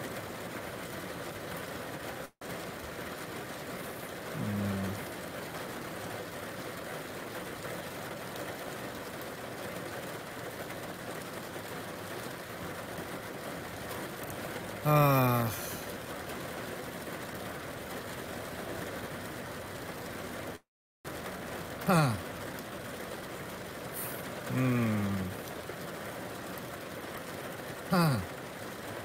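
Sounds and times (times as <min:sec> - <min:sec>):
heavy rain hissing: 0:00.0 - 0:29.0
man humming: 0:03.9 - 0:05.0, 0:14.8 - 0:15.9, 0:21.8 - 0:22.2, 0:24.0 - 0:25.4, 0:27.9 - 0:28.3.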